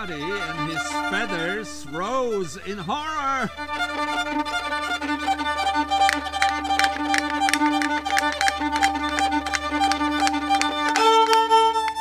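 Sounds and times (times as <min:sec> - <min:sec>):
solo violin folk tune: 0:00.0 - 0:12.0.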